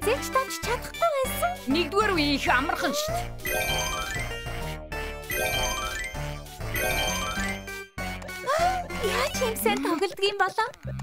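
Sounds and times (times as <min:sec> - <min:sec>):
game music with chiming notes: 0:00.0 - 0:11.0.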